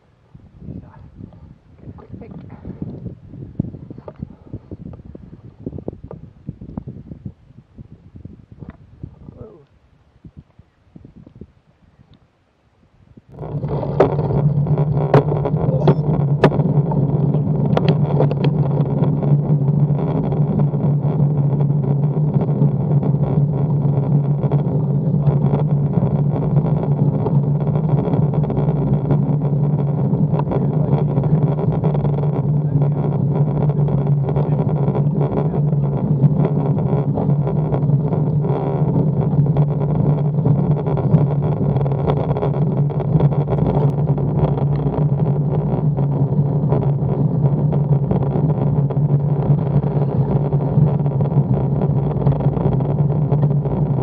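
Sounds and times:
constant low hum: 0.0 - 54.0
road and wind noise: 0.0 - 54.0.

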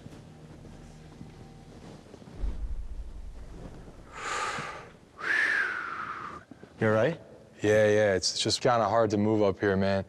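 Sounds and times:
low rumble: 2.4 - 4.3
person blowing out breath: 4.1 - 6.4.

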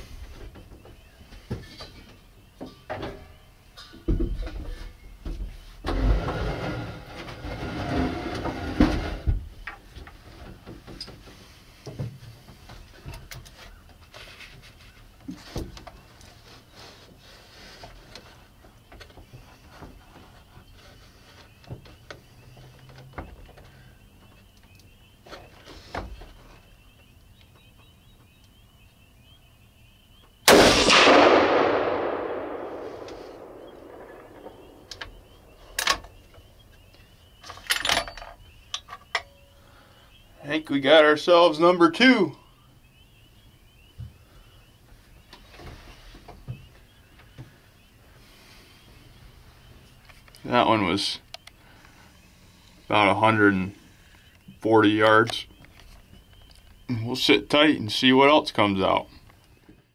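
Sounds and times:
rifle shot with echo: 30.5 - 36.0.

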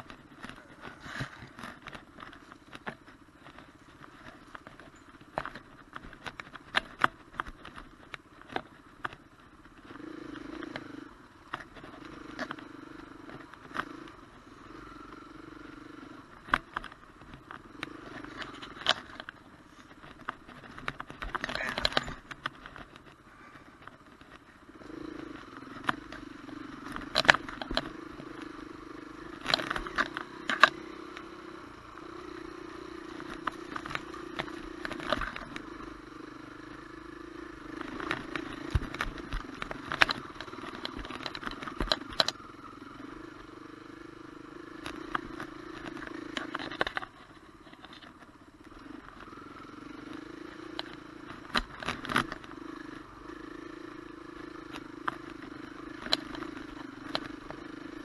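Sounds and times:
bike clacking over rough ground: 0.0 - 58.0
dirt bike engine: 0.0 - 58.0.

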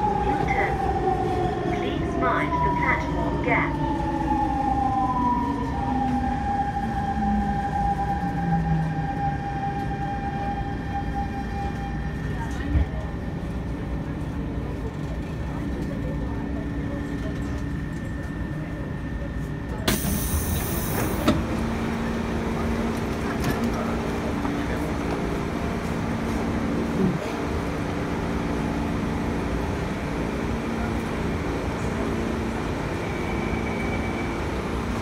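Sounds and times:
loud hiss of train doors: 19.8 - 21.4.

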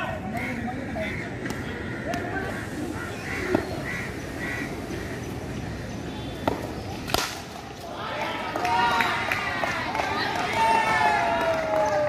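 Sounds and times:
players shouting: 7.8 - 12.0.

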